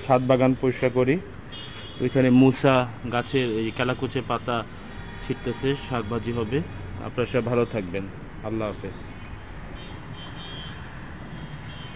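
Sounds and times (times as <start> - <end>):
distant traffic rumble: 0.0 - 11.9.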